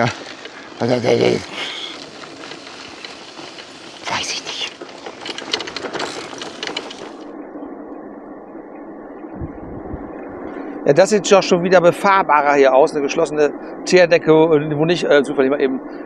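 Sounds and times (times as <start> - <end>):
wind and road noise from bike: 0.0 - 16.0.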